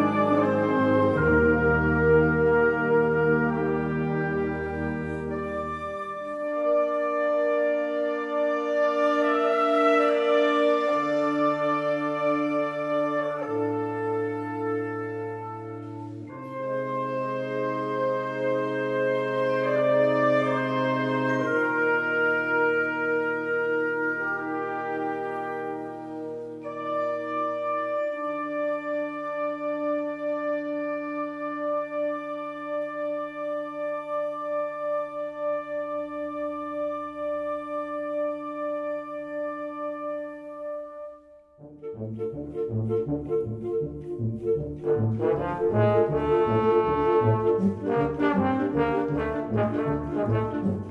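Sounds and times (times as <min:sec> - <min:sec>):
wind band sustained chords: 0:00.0 - 0:40.8, 0:41.7 - 0:50.9.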